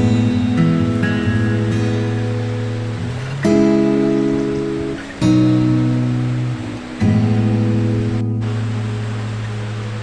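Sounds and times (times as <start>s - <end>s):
flowing water hiss: 0.0s - 10.0s
guitar chord ringing: 0.0s - 10.0s.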